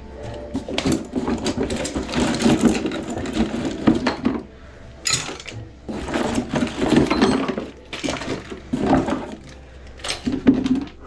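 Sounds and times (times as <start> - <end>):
hand tools clattering in bucket: 0.2 - 11.0.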